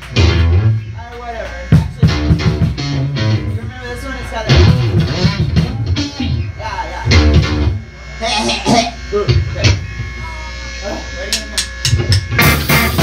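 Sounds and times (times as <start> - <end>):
rock band with drum kit: 0.0 - 10.7, 11.4 - 13.0
electric guitar: 0.0 - 13.0.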